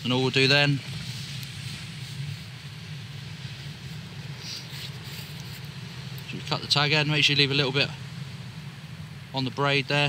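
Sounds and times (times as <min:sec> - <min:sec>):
faint rustle: 0:00.0 - 0:09.3
low rumble with hiss: 0:00.0 - 0:10.0.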